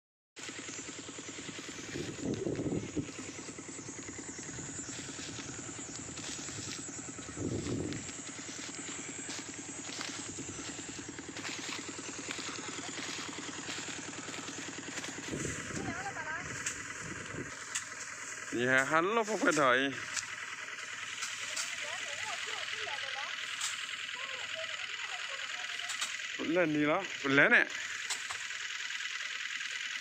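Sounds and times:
small engine droning: 0.4 - 30.0.

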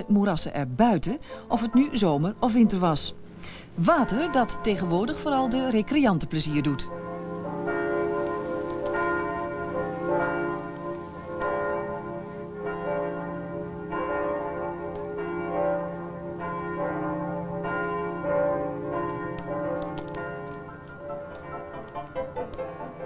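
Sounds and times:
church bells ringing: 0.0 - 23.0.

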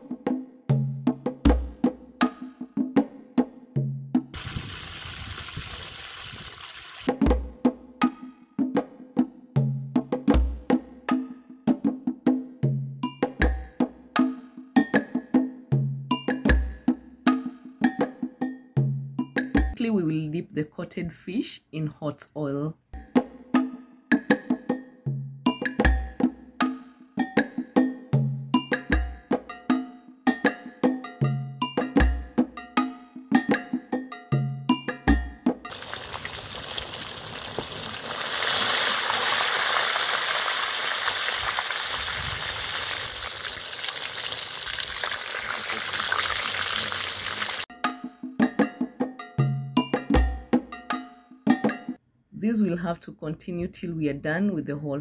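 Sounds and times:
fish deep-frying in oil: 4.4 - 7.1, 35.7 - 47.7
background music with steady beat: 7.1 - 19.9, 23.0 - 35.7, 47.7 - 52.0.

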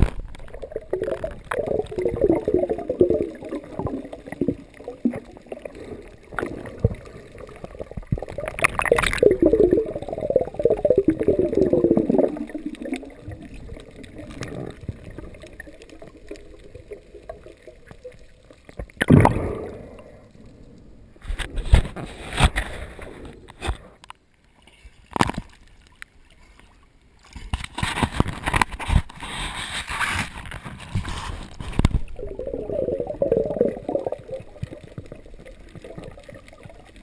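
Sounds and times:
underwater splashy bursts: 0.0 - 17.7, 19.0 - 20.0, 31.8 - 36.5
muffled underwater gurgling: 0.5 - 17.5, 31.9 - 37.0.

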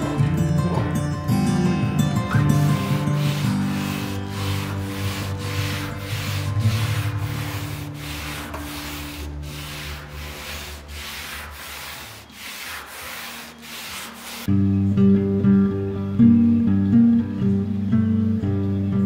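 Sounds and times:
sandpaper rubbing on hull: 2.3 - 14.5.

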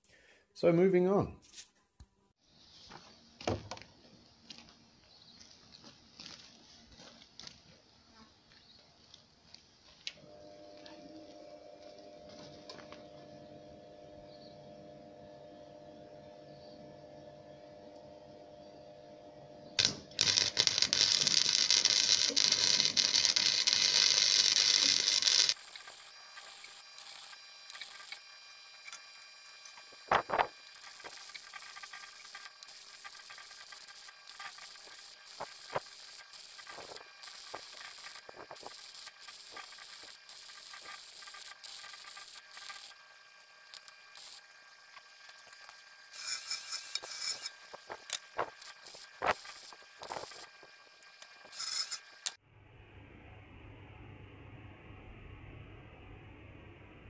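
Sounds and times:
arc welding crackling hiss: 19.8 - 52.4.

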